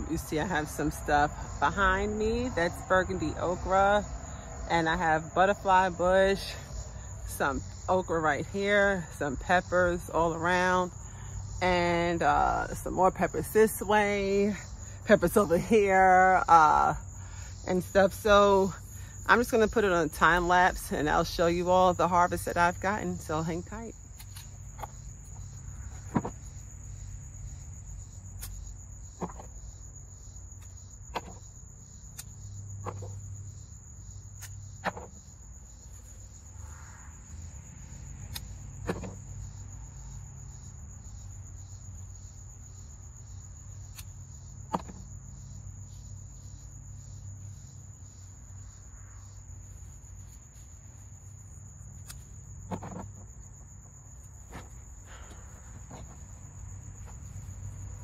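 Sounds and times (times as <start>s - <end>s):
insects chirring: 0.0s - 58.0s.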